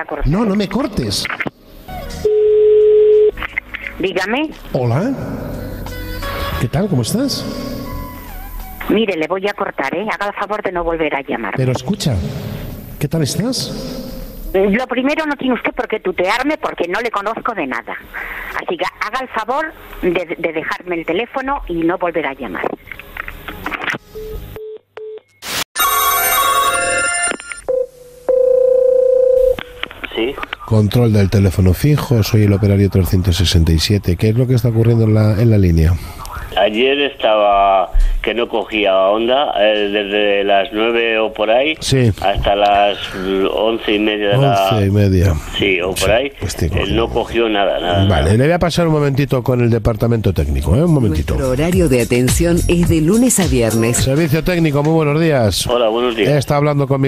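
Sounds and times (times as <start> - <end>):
telephone line beep: 2.0 - 3.3, 24.2 - 29.8
short telephone beeps: 2.1 - 3.3.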